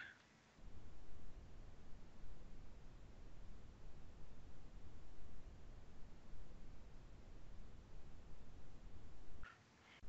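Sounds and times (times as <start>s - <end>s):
faint low rumble: 0.6s - 9.5s.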